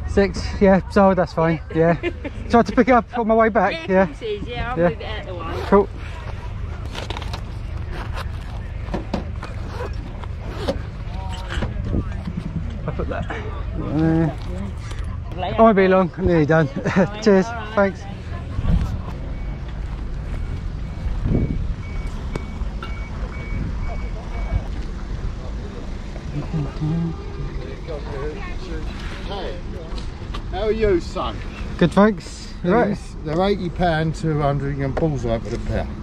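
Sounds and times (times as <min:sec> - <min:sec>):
faint voices: 0:04.1 - 0:21.3, 0:23.2 - 0:31.8
vehicle reversing alarm beeping: 0:16.9 - 0:24.8
low rumbling on microphone: 0:18.4 - 0:27.9
wind rumble on microphone: 0:20.9 - 0:22.2.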